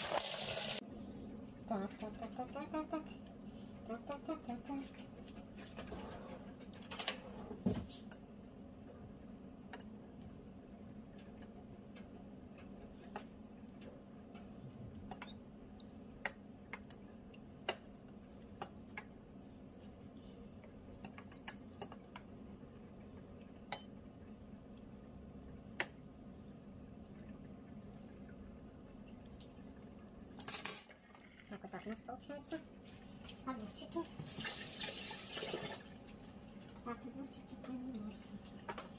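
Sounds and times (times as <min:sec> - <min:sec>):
steady low hum: 0:00.8 - 0:34.2.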